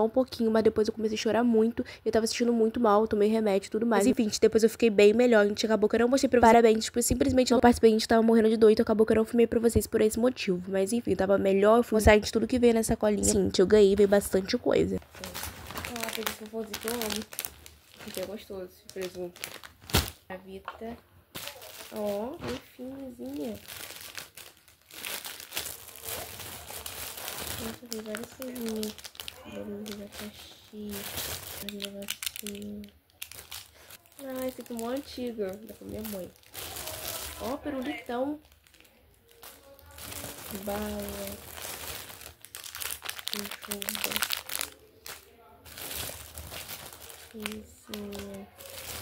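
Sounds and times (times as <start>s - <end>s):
plastic bag crinkling: 15.0s - 20.3s, 21.3s - 49.0s.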